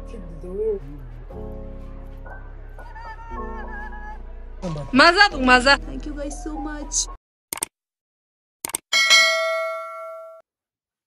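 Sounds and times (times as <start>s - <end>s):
bell-like ding: 8.9s - 10.4s.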